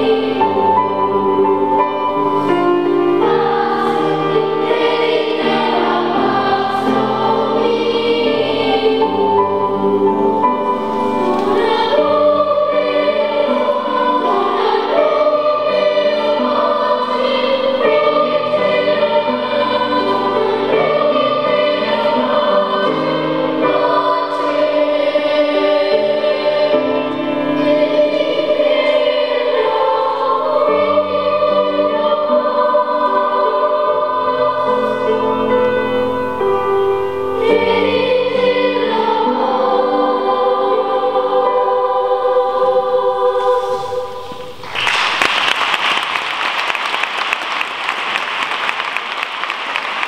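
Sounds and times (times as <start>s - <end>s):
children's choir singing: 0.0s - 50.0s
piano accompaniment: 0.0s - 50.0s.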